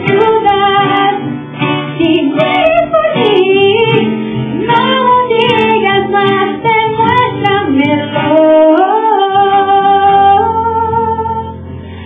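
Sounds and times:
strummed acoustic guitar: 0:00.0 - 0:12.0
person singing: 0:02.0 - 0:12.0.

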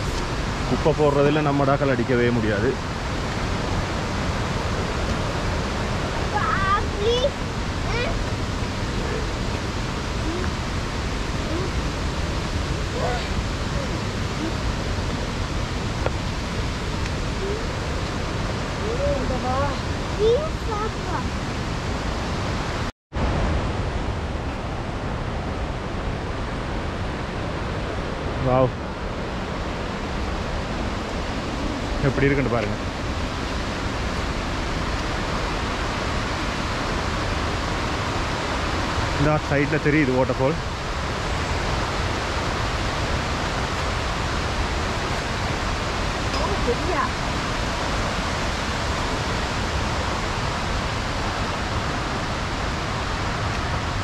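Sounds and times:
waterfall rushing: 0:00.0 - 0:54.0.

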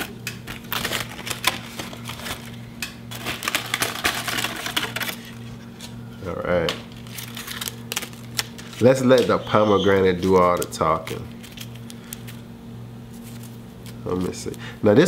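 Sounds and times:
aluminium foil crinkling and tearing: 0:00.0 - 0:06.0, 0:06.8 - 0:12.5, 0:13.1 - 0:14.6.

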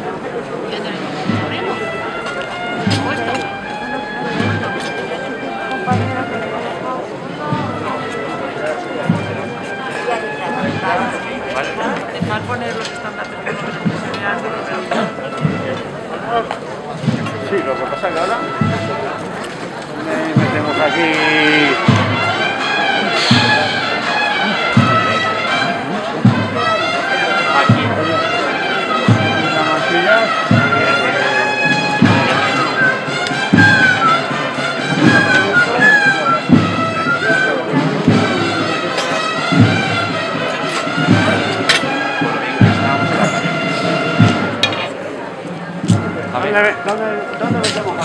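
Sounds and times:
brass band playing a march: 0:00.0 - 0:48.0
bass drum beats: 0:23.2 - 0:24.0.

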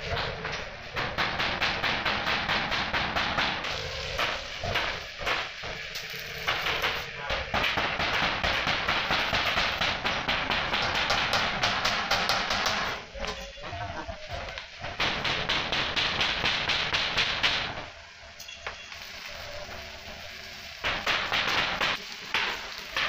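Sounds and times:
arc welding crackling sizzle: 0:00.0 - 0:23.0.

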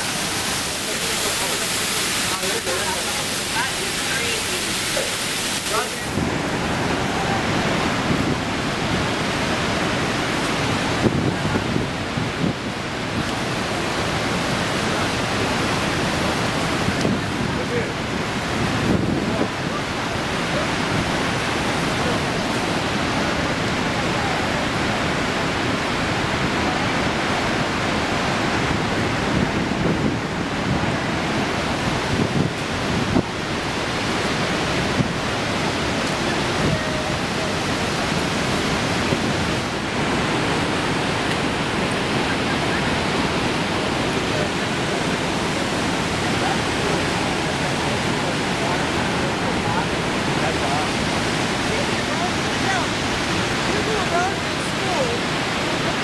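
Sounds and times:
waterfall roaring: 0:00.0 - 0:56.0.

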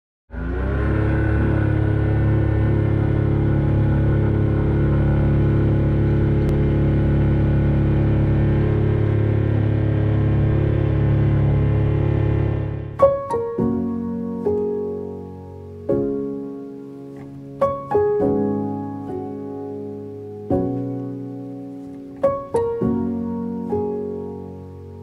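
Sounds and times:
aircraft engine droning: 0:00.3 - 0:13.0.

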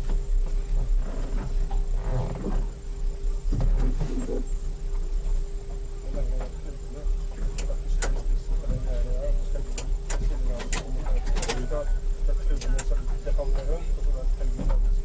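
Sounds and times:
cockpit low rumble and hum: 0:00.0 - 0:15.0
faint voices: 0:05.9 - 0:15.0
sharp clicks and knocks: 0:07.3 - 0:08.9, 0:09.7 - 0:11.7, 0:12.5 - 0:13.0.

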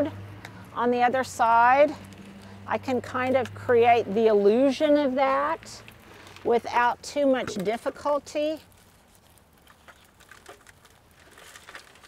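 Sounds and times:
soil rustling: 0:00.0 - 0:12.0.

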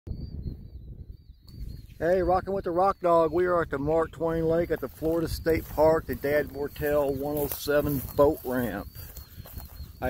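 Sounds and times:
wind buffeting microphone: 0:00.1 - 0:10.0.

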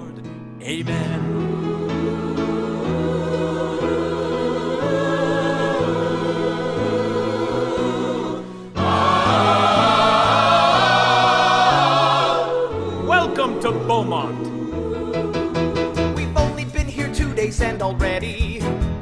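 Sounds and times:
musical accompaniment: 0:00.0 - 0:19.0
choir singing held notes: 0:01.2 - 0:16.4.

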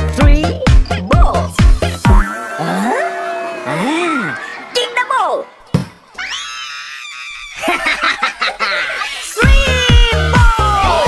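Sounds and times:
dance beat: 0:00.1 - 0:02.4.

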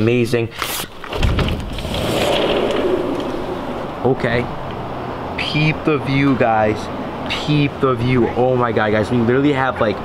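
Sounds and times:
city traffic: 0:00.0 - 0:10.0.

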